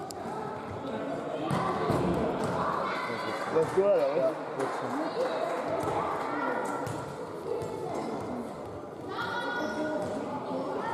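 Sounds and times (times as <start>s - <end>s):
children shouting and calling: 9.1s - 9.9s.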